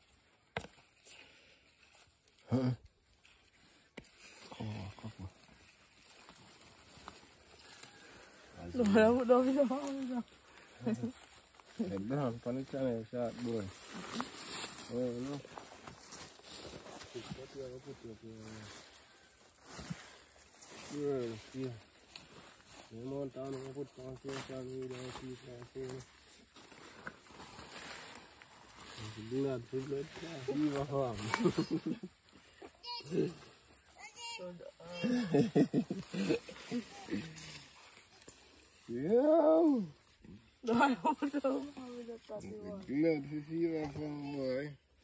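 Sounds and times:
rustling vines and scraping soil: 0.0s - 45.0s.

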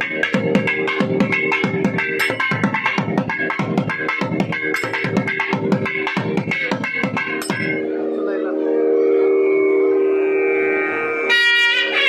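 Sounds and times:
double-reed wind instrument note: 7.8s - 12.0s.

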